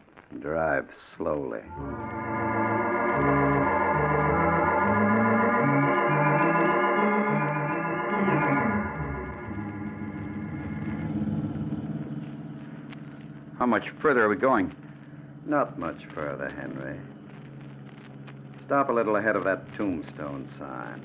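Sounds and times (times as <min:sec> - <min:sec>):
dramatic organ music: 0:01.6 - 0:21.0.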